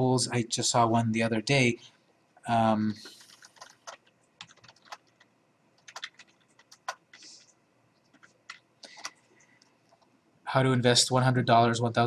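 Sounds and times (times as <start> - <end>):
computer keyboard keys clicking: 3.0 - 9.2.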